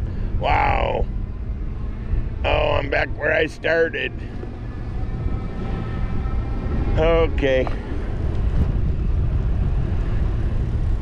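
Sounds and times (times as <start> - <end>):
wind and bicycle tyres rumbling: 0.0 - 11.0.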